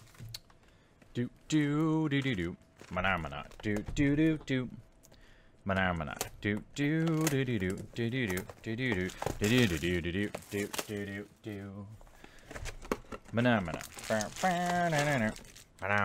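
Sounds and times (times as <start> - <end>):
man singing wordless syllables: 1.1 - 4.8, 5.6 - 12.0, 13.3 - 16.0
plastic shrink wrap tearing: 7.0 - 11.2, 13.6 - 16.0.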